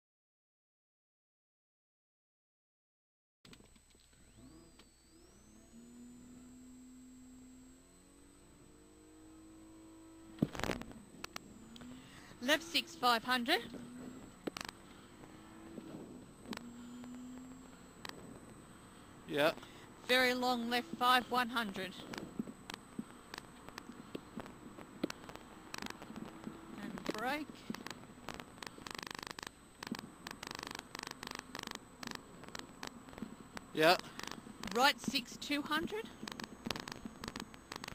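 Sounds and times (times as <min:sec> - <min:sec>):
thin high whine: 0:04.0 - 0:37.9
car engine humming: 0:04.2 - 0:37.9
clicks: 0:10.4 - 0:12.1, 0:13.6 - 0:18.6, 0:22.0 - 0:37.9.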